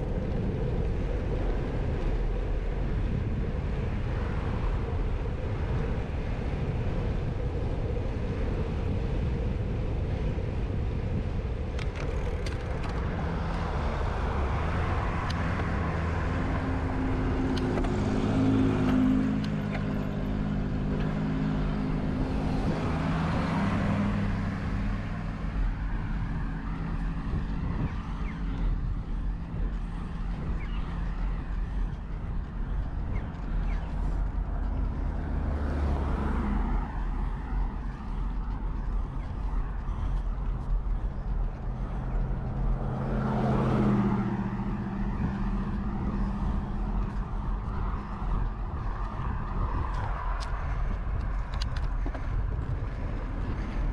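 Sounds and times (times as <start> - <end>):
bicycle road noise on asphalt: 0.0 - 53.9
passing vehicle engine hum: 0.0 - 53.9
wind rush: 0.0 - 53.9.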